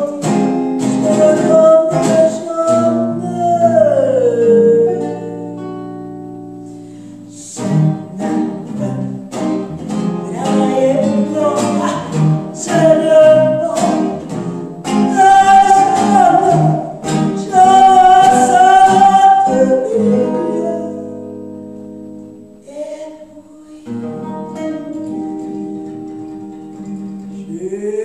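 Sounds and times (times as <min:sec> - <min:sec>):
woman singing: 0:00.0 - 0:05.6, 0:07.3 - 0:09.4, 0:10.2 - 0:21.3, 0:22.6 - 0:28.0
acoustic guitar: 0:00.0 - 0:28.0
electric guitar: 0:00.0 - 0:28.0.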